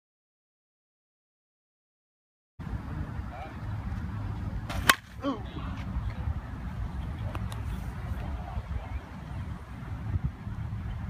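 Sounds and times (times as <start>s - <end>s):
bat hitting ball with a ping: 4.7s - 5.1s.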